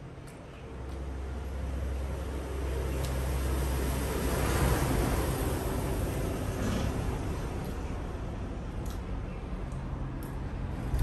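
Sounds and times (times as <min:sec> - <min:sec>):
rushing road noise: 0:01.0 - 0:11.0.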